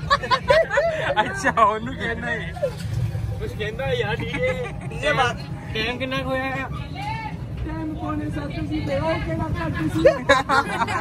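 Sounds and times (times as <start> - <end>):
rickshaw engine rumble: 0.0 - 11.0.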